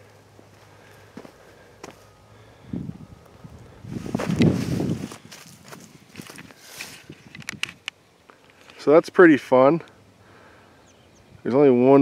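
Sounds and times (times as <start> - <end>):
footsteps on loose soil: 0.0 - 2.2, 3.2 - 7.8
rough rustle: 3.8 - 8.9.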